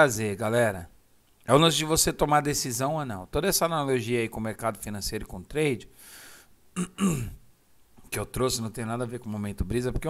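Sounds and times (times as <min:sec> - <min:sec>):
soft breath: 0:05.9 - 0:06.6
man clearing throat: 0:06.8 - 0:07.4.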